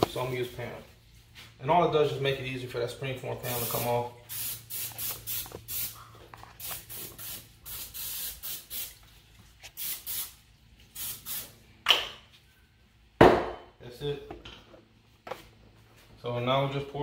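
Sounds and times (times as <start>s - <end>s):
cooking spray hissing from aerosol: 3.4s - 6.0s, 6.6s - 9.0s, 9.7s - 11.5s.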